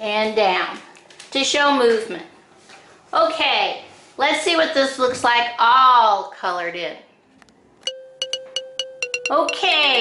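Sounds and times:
bell-like chiming pings: 0:07.9 - 0:10.0
held tone: 0:07.9 - 0:10.0.

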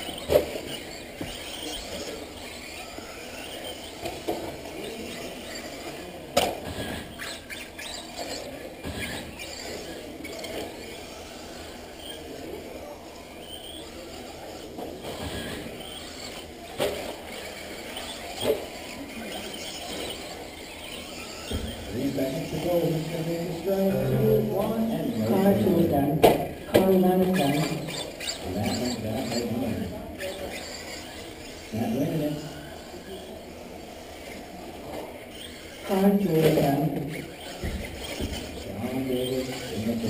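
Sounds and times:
remote control car motors whining: 0:00.0 - 0:40.0.

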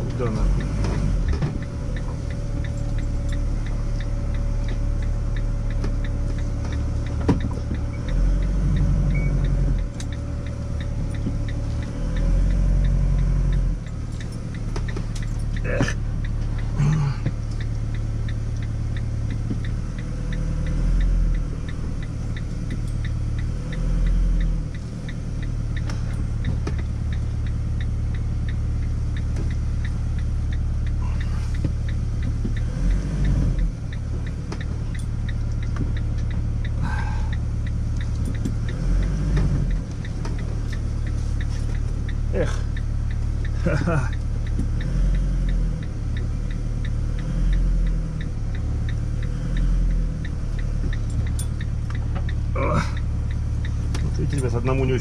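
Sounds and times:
faint steady ticking: 0:00.0 - 0:55.0
motorhome engine running: 0:00.0 - 0:55.0.

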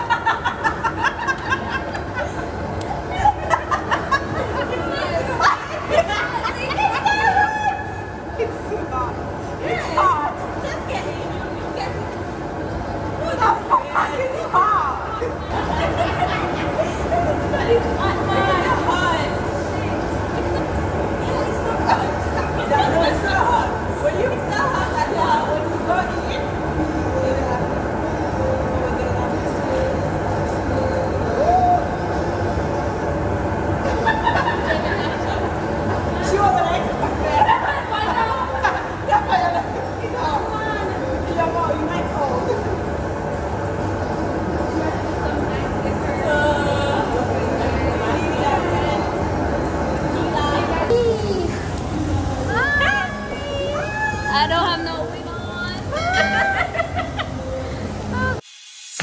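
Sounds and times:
hot tub jets bubbling: 0:00.0 - 0:58.5.

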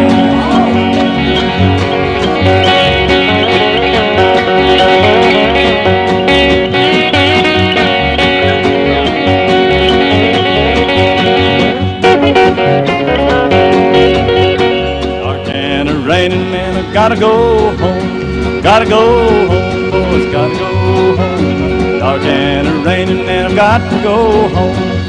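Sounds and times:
acoustic guitar: 0:00.0 - 0:25.0
banjo picking: 0:00.0 - 0:25.0
fiddle: 0:00.0 - 0:25.0
steady bass beat: 0:00.0 - 0:25.0.

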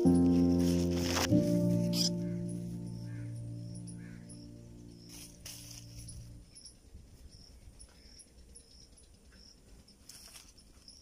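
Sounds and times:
music tones: 0:00.0 - 0:06.5
nestlings rasping calls: 0:01.8 - 0:06.7.

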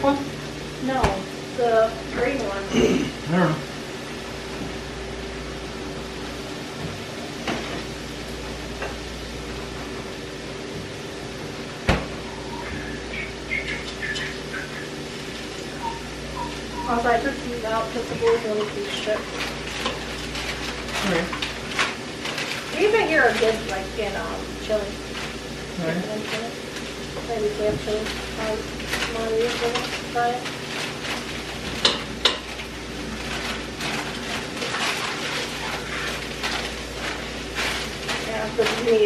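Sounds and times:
soft voices: 0:00.0 - 0:03.7, 0:12.3 - 0:19.2, 0:25.7 - 0:26.6
steady low hum: 0:00.0 - 0:39.0.

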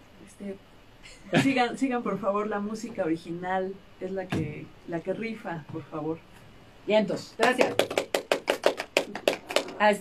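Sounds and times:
people clapping: 0:07.4 - 0:10.0.

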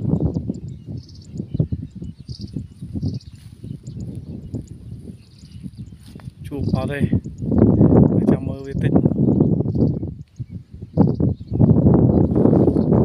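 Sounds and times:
insects chirping: 0:00.0 - 0:08.1
wind buffeting microphone: 0:00.0 - 0:13.0.

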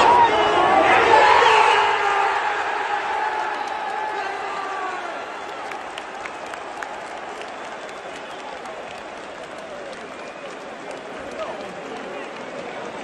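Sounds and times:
crowd chanting: 0:00.0 - 0:08.1
crowd applause: 0:00.0 - 0:13.0
close sharp claps: 0:03.3 - 0:13.0.

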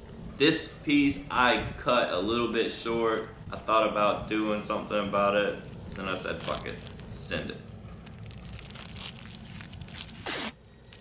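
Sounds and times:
rustling of wrap and paper: 0:05.6 - 0:11.0
adhesive tape ripped off roll: 0:08.1 - 0:11.0.

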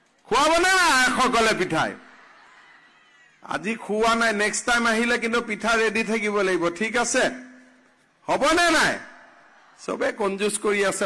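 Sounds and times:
man speaking into microphones: 0:00.2 - 0:02.1, 0:03.4 - 0:11.0.

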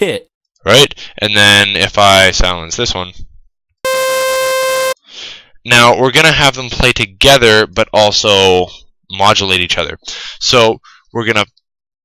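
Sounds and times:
buzzy synthesizer note: 0:03.9 - 0:05.0.

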